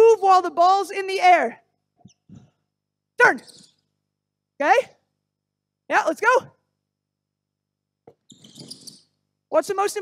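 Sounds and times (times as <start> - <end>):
basketball shoes squeaking: 3.3 - 3.8, 8.1 - 9.1.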